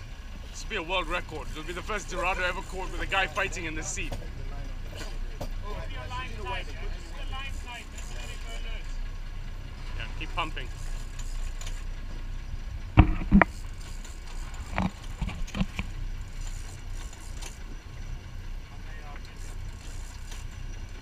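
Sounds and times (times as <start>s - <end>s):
boat engine rumbling: 0.0s - 21.0s
sharp knocks: 13.0s - 13.5s.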